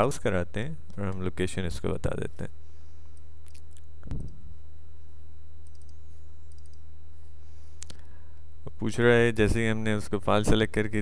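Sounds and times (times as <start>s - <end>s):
low electrical hum: 0.0s - 11.0s
computer mouse clicks: 5.6s - 6.8s.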